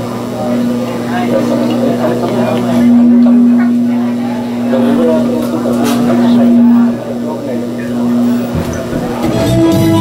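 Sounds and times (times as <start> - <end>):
electrical hum from sound system: 0.0 - 10.0
faint voices: 0.0 - 10.0.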